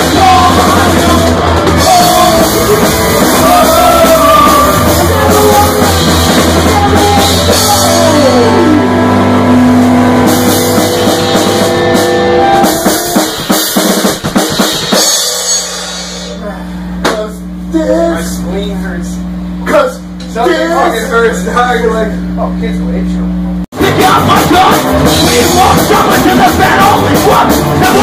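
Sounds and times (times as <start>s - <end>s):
amplifier hum: 0.0s - 13.5s, 16.2s - 23.6s
drum hits: 0.0s - 16.4s, 23.7s - 28.0s
punk rock band playing: 0.0s - 16.4s, 23.7s - 28.0s.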